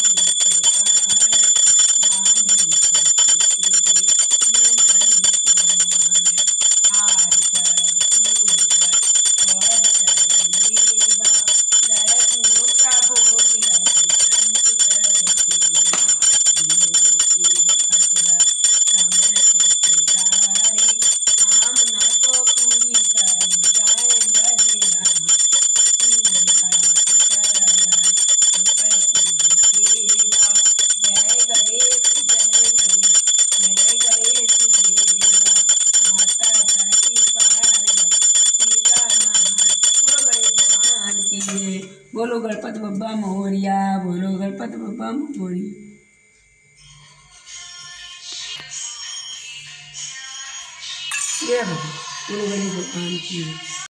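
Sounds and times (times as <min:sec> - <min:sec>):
small bell ringing rapidly: 0:00.0 - 0:42.2, 0:50.8 - 0:53.9.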